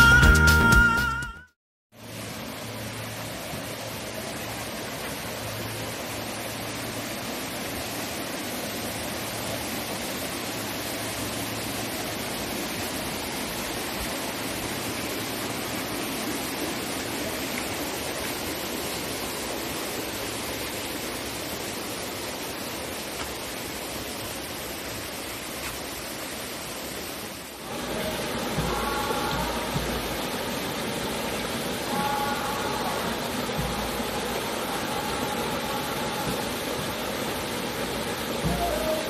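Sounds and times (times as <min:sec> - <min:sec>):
mountain stream rushing: 0:02.0 - 0:39.0.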